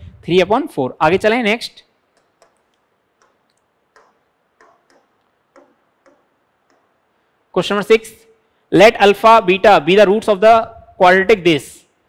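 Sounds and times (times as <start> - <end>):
stylus tapping on screen: 2.1 - 7.1.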